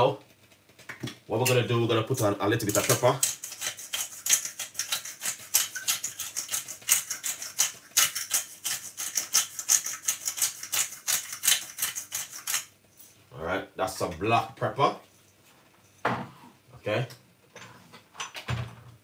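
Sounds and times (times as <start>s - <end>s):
pepper mill grinding: 1.4s - 12.7s.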